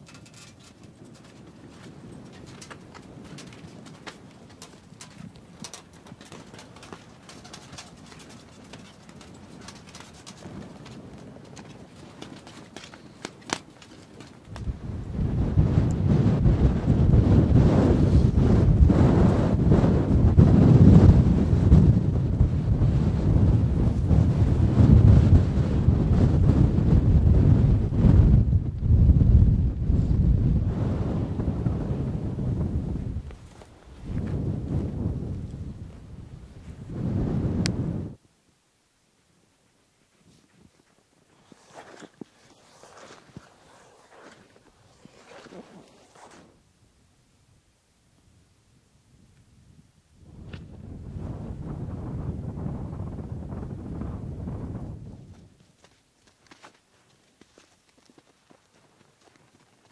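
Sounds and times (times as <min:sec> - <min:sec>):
faint ticks and clicks: 0:00.0 - 0:15.0
wind buffeting microphone: 0:00.0 - 0:38.2, 0:49.2 - 0:55.7.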